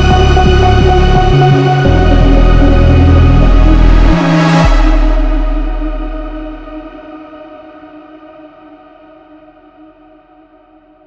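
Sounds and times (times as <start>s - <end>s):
deep sub-bass note: 0.0s - 7.2s
sustained electronic chord: 0.0s - 7.3s.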